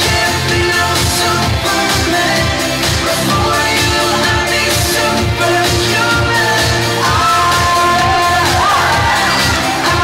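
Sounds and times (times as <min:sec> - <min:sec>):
upbeat pop song over speakers: 0:00.0 - 0:10.0
audience cheering and shouting: 0:06.8 - 0:10.0.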